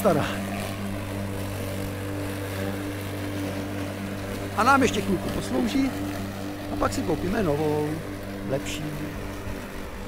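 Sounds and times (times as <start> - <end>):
electric lawn mower humming: 0.0 - 10.0.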